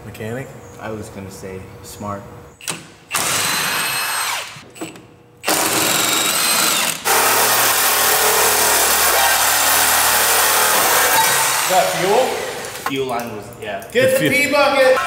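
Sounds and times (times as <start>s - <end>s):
reciprocating saw cutting metal: 5.5s - 12.9s.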